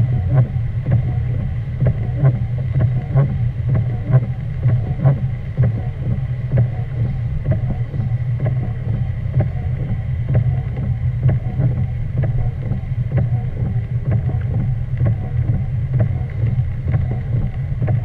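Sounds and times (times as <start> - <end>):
car engine rumble: 0.0 - 18.0
raindrops ticking on windshield: 0.0 - 18.0.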